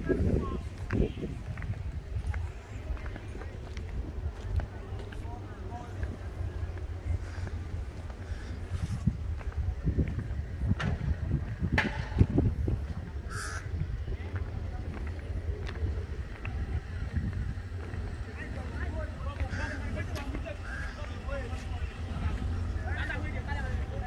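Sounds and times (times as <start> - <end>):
people talking: 0.0 - 24.0
wind rumbling on microphone: 0.0 - 24.0.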